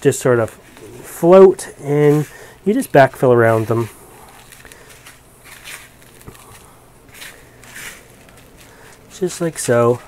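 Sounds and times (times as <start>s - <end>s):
moss rustling in a pot: 0.0s - 10.0s.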